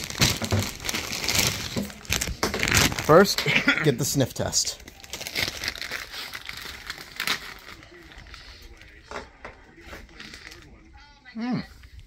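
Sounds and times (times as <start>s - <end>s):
plastic chip bag crinkling: 0.0s - 10.8s.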